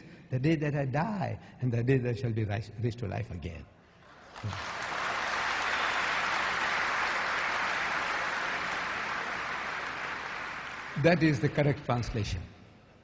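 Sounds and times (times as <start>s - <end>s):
audience applauding: 4.1s - 11.8s.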